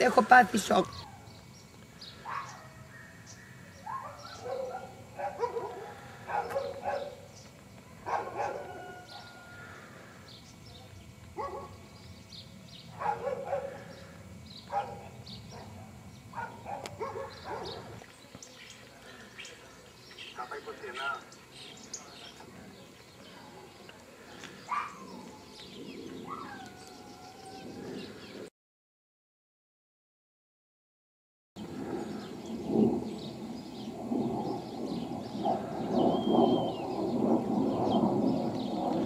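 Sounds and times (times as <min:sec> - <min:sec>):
small birds chirping: 0:00.0 - 0:28.5, 0:32.0 - 0:39.0
dog barking: 0:02.2 - 0:02.8, 0:03.8 - 0:07.2, 0:08.0 - 0:09.4, 0:11.4 - 0:11.8, 0:13.0 - 0:13.8, 0:14.7 - 0:18.0, 0:24.7 - 0:25.0.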